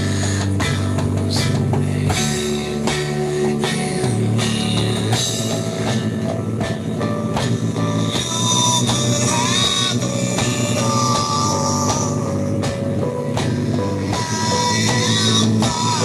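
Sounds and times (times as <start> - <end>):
electronic drum kit hits: 0.0 - 16.0
rock song: 0.0 - 16.0.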